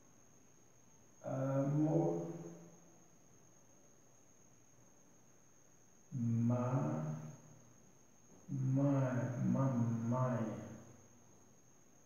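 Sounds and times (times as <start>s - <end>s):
faint hiss: 0.0s - 12.0s
man humming drawn-out syllable: 1.2s - 2.4s, 6.1s - 7.2s.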